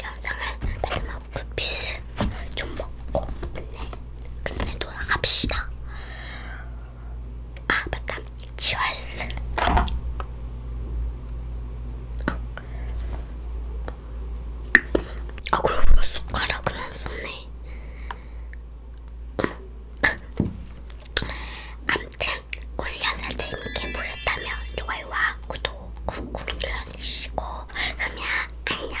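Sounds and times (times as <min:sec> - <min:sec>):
child whispering: 0:22.8 - 0:29.0.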